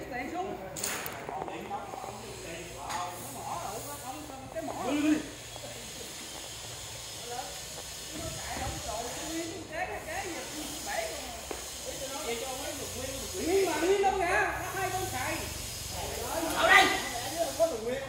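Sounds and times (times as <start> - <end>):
steady high hiss: 0.0 - 18.0
workers talking and calling out: 0.0 - 18.0.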